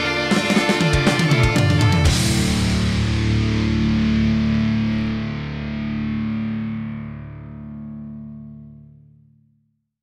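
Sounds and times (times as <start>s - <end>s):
distorted electric guitar chord: 0.0s - 9.2s.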